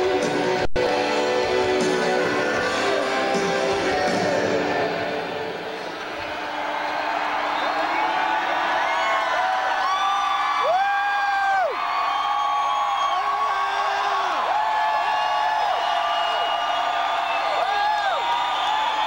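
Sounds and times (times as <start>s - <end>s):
crowd cheering and whooping: 2.2s - 19.0s.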